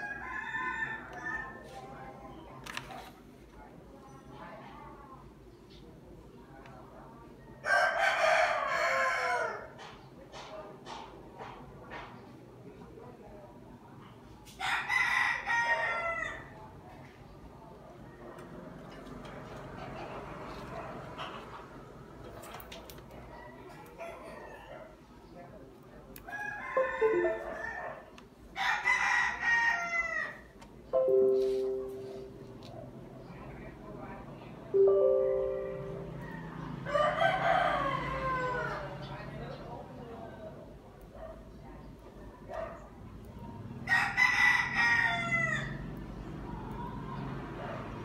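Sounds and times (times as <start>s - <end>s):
rooster crowing: 7.6s - 9.7s, 14.6s - 16.5s, 26.3s - 28.0s, 28.6s - 30.5s, 36.0s - 39.0s, 43.8s - 45.9s.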